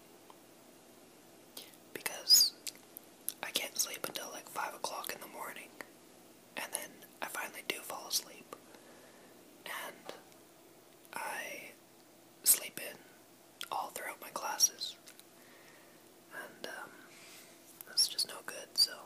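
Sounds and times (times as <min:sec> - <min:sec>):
person whispering: 0:01.6 - 0:02.5, 0:03.3 - 0:05.9, 0:06.6 - 0:08.6, 0:09.7 - 0:10.2, 0:11.2 - 0:11.8, 0:12.4 - 0:13.0, 0:13.6 - 0:15.0, 0:16.3 - 0:17.0, 0:17.8 - 0:19.0.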